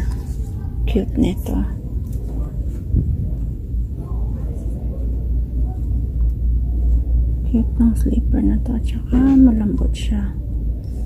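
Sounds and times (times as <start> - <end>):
faint indistinct voices: 0.0 - 11.0
steady low rumble: 0.0 - 11.0.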